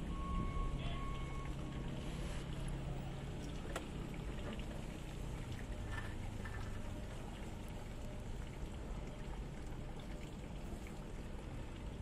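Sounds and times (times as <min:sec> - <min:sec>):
low mechanical rumble: 0:00.0 - 0:12.0.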